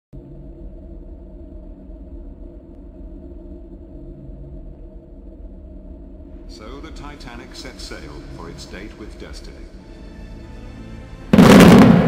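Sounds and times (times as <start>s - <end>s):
faint hum: 0.1s - 12.0s
steady low rumble: 0.1s - 12.0s.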